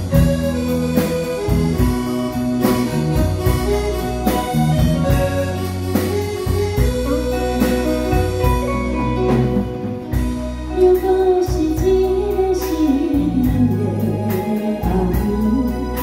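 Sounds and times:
steady drum beat: 0:00.0 - 0:12.3
bass notes: 0:00.0 - 0:16.0
electric guitar: 0:00.0 - 0:16.0
keyboard organ chords: 0:00.0 - 0:16.0.

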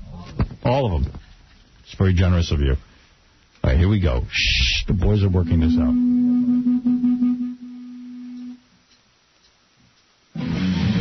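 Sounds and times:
steady held instrument note: 0:04.4 - 0:08.7.

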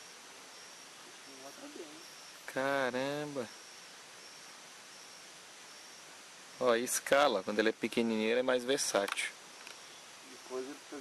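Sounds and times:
high insect trill: 0:00.0 - 0:11.0
outdoor background hiss: 0:00.0 - 0:11.0.

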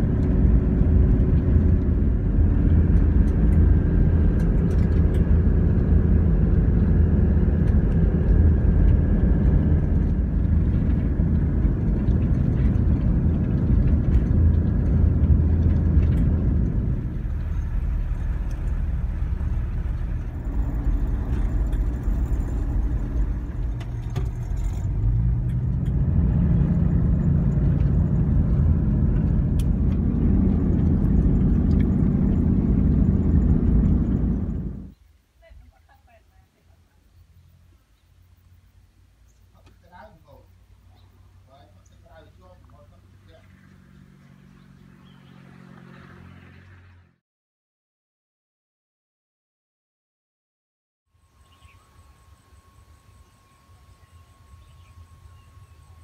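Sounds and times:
vehicle engine and tyre rumble: 0:00.0 - 0:35.1, 0:36.5 - 0:47.2, 0:51.2 - 0:56.0.

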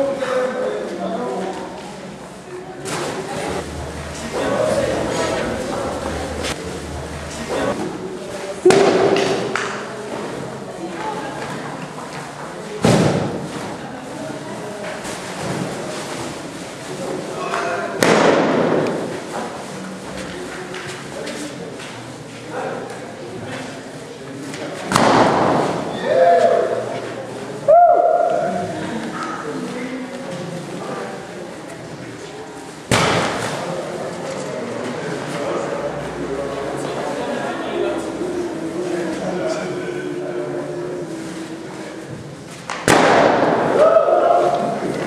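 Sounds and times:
voices calling out: 0:02.8 - 0:08.3
loud bang echoing in a hall: 0:08.6 - 0:09.6, 0:18.0 - 0:19.1, 0:24.9 - 0:26.4, 0:32.9 - 0:33.7, 0:42.8 - 0:44.8
balloon bursting bang: 0:42.8 - 0:43.7.

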